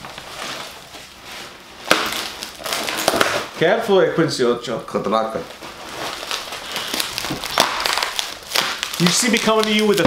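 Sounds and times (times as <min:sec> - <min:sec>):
plastic packaging crinkling: 0:00.0 - 0:03.6, 0:04.9 - 0:10.0.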